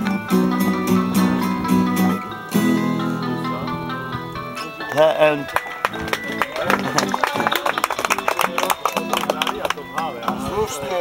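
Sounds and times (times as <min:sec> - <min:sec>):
acoustic guitar strummed quickly: 0:00.0 - 0:10.8.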